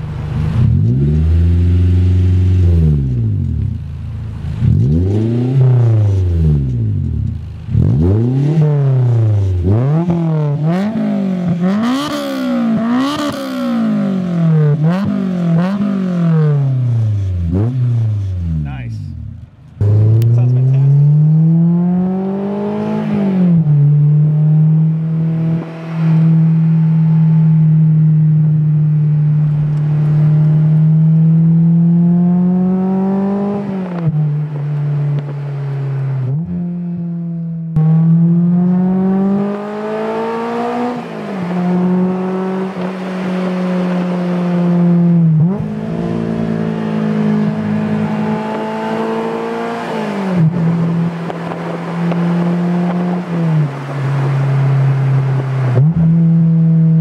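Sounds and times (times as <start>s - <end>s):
car engine accelerating through gears: 0.0s - 57.0s
car engine revving: 0.0s - 57.0s.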